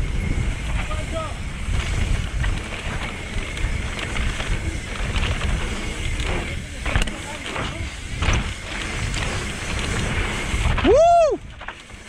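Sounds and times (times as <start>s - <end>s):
bike tyres rumbling on dirt: 0.0s - 12.0s
wind buffeting microphone: 0.0s - 12.0s.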